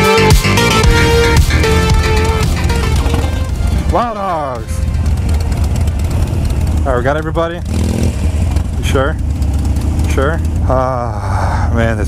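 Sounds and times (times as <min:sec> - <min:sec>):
electronic music: 0:00.0 - 0:05.0
motorcycle engines idling: 0:00.5 - 0:12.0.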